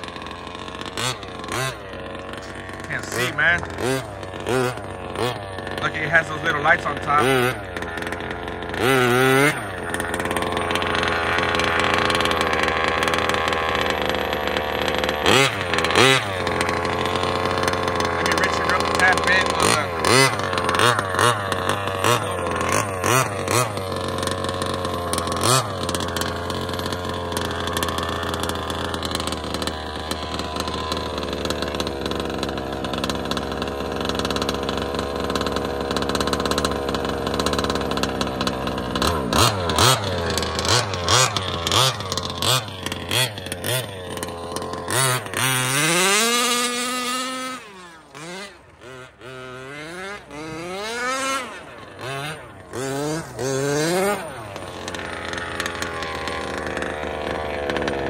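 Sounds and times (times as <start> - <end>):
engine revving: 0.0 - 58.0
small two-stroke engine running: 0.0 - 58.0.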